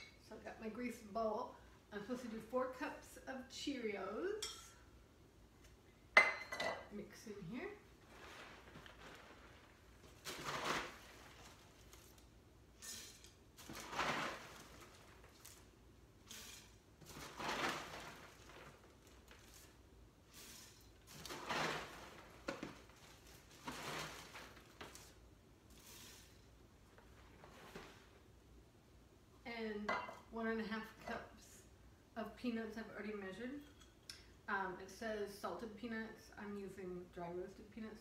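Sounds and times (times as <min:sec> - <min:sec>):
dry cereal pouring: 0:08.0 - 0:15.7, 0:16.3 - 0:28.0.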